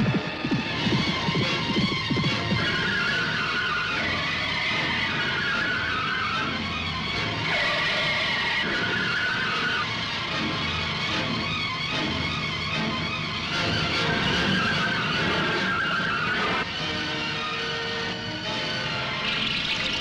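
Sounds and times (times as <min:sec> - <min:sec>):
action film background music: 0:00.0 - 0:20.0.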